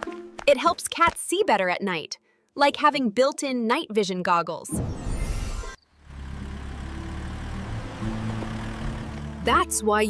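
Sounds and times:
car engine humming: 5.9s - 9.9s.

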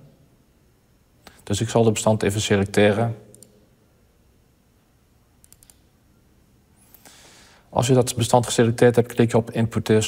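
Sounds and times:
faint computer mouse clicks: 5.4s - 5.9s.

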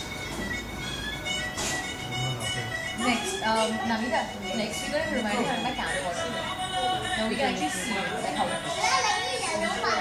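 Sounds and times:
music playing: 0.0s - 10.0s
people chattering and calling out: 2.0s - 10.0s.

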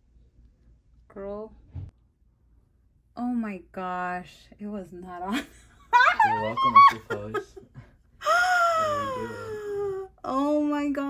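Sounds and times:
woman wailing: 6.1s - 7.2s.

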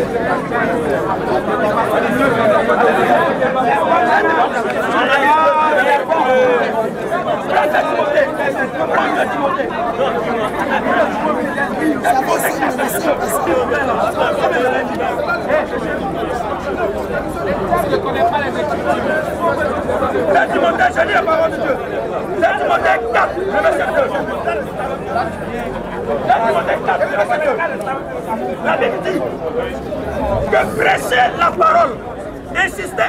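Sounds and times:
crowd chatter: 0.0s - 33.0s.

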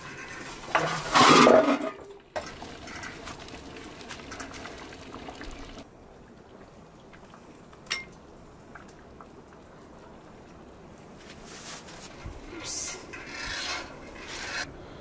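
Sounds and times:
soup simmering: 2.2s - 11.2s.

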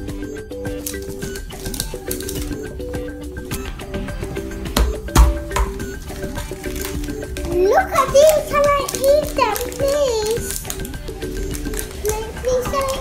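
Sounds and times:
background music of repeated notes: 0.0s - 13.0s
plastic capsule clicking open: 0.7s - 2.6s.

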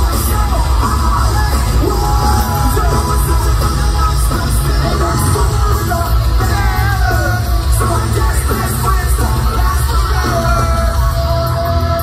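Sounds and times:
live rock band playing: 0.0s - 12.0s
person singing: 0.0s - 12.0s.

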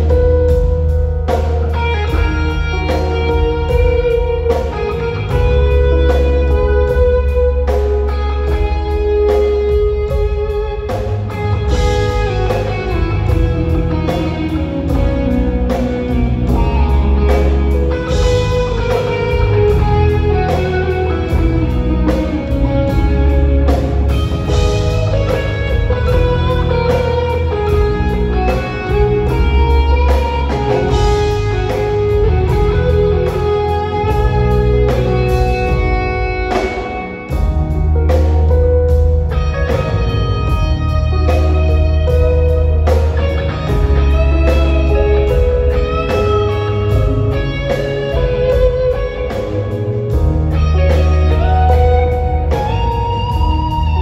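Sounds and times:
lead electric guitar melody: 0.0s - 54.0s
live band playing instrumental: 0.0s - 54.0s.

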